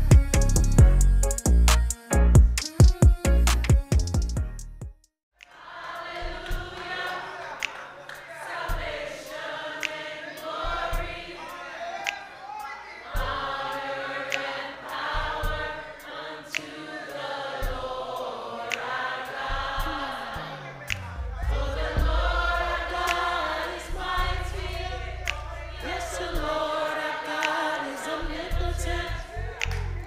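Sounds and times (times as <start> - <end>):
steady beat: 0.0 - 5.0, 5.9 - 30.0
gospel choir singing: 5.4 - 30.0
low thuds: 20.9 - 26.6.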